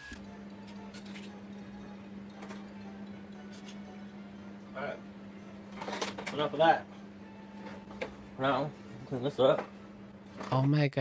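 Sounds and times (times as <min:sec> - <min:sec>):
steady low hum: 0:00.0 - 0:10.5.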